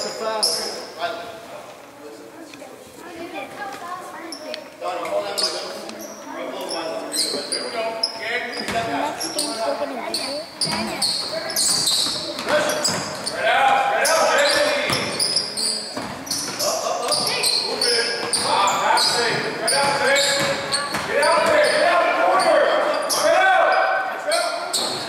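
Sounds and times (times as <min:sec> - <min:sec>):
sneakers squeaking: 0:00.0 - 0:01.0, 0:04.1 - 0:25.0
basketball bouncing on hardwood: 0:19.1 - 0:21.6.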